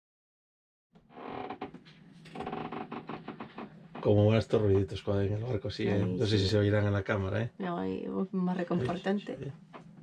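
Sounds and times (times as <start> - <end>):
sailboat creaking and squeaking: 1.0 - 4.7.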